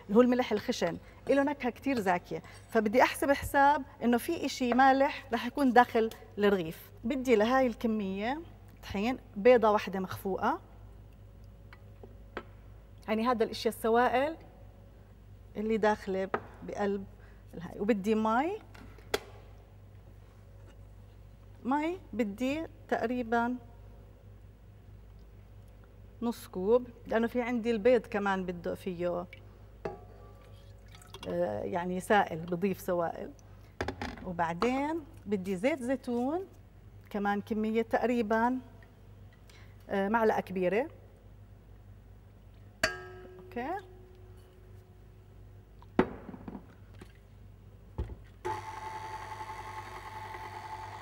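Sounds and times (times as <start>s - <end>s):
low steady hum: 0.0s - 49.2s.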